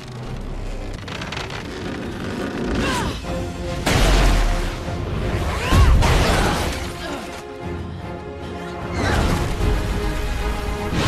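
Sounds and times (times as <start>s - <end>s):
action film music: 0.0s - 11.0s.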